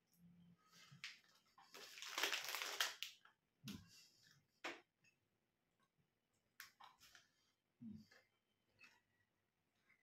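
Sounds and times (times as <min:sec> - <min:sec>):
plastic packet rustling: 0:01.0 - 0:03.3.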